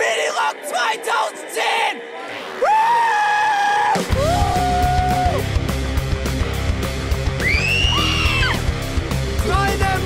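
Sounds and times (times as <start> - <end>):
loud rock music: 0.0 - 10.0.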